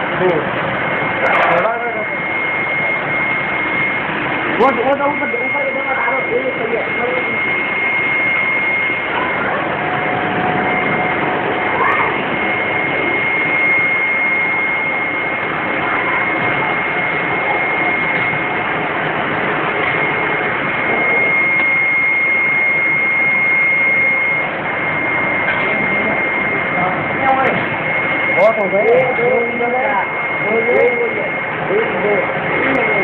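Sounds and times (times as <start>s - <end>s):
high-pitched whine: 0.0s - 33.0s
printing machine whirring: 0.0s - 33.0s.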